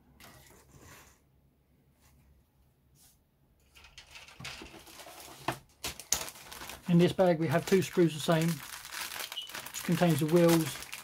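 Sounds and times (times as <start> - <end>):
plastic parts set down: 3.7 - 6.8
soft plastic rustling: 3.8 - 11.0.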